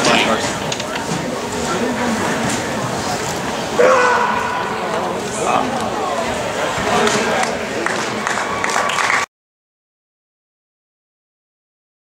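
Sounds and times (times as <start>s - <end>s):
murmur of indoor arena crowd: 0.0s - 9.3s
spectator high-pitched shout: 3.8s - 4.9s.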